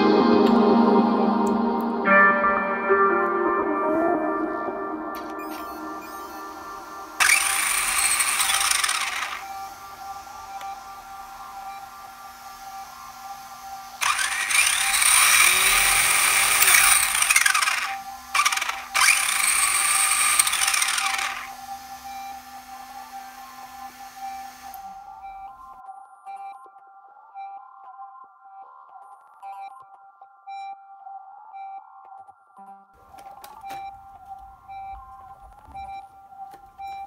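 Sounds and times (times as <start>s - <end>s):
background music: 0.0s - 37.0s
electric motor spinning wheels: 5.5s - 25.6s.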